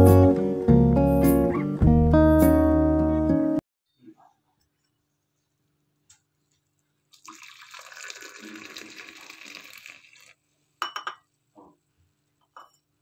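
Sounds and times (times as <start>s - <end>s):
tea pouring into a mug: 7.1s - 10.4s.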